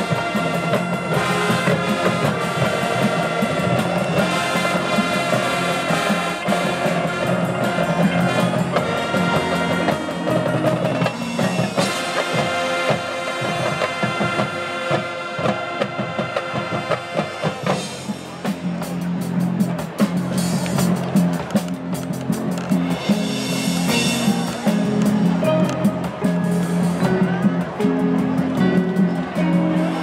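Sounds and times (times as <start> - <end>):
brass sustained chords: 0.0 - 18.0
drumline drumming: 0.0 - 30.0
percussion ensemble: 0.0 - 30.0.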